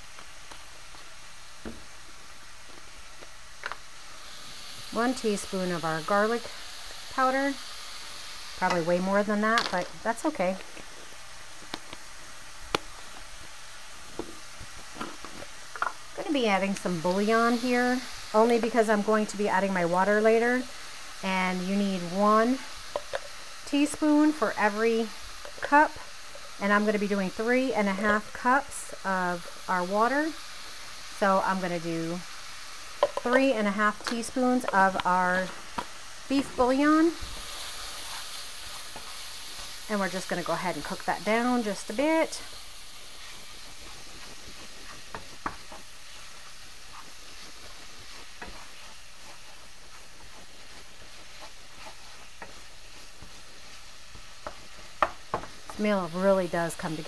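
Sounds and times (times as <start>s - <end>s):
meat sizzling in a skillet: 0.0s - 57.0s
wooden spoon stirring: 43.1s - 56.8s.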